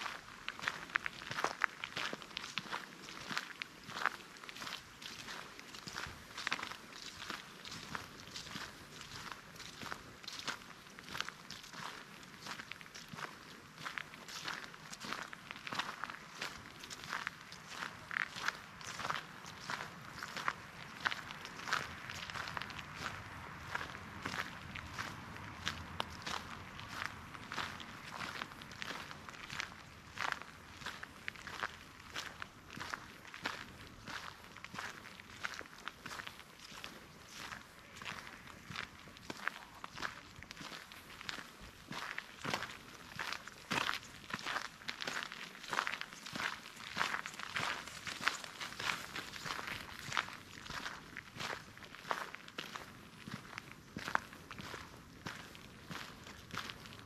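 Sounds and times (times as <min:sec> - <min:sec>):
footsteps crunching dry leaves: 0:00.0 - 0:57.0.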